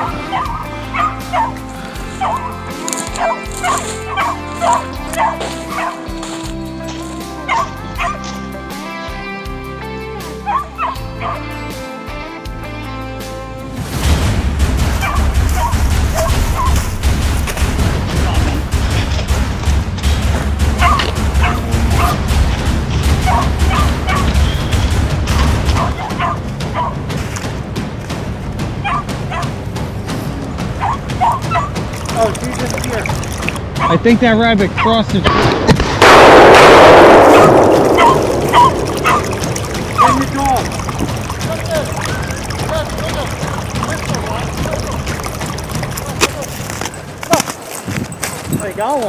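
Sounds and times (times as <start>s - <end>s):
dog barking and yipping: 0.0s - 6.2s, 7.4s - 8.3s, 10.4s - 11.5s, 15.0s - 17.0s, 20.8s - 22.2s, 23.2s - 24.4s, 25.3s - 27.0s, 28.8s - 29.5s, 30.8s - 31.9s, 33.7s - 34.0s, 37.3s - 40.3s
background music with held notes: 0.0s - 35.6s.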